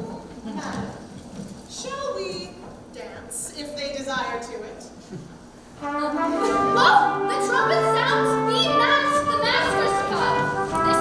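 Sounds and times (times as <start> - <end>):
footsteps on wooden stage: 0.0 - 3.0, 8.0 - 11.0.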